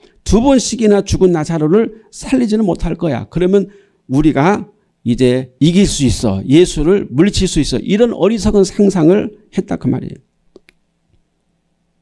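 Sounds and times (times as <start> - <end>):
man speaking: 0.2 - 10.3.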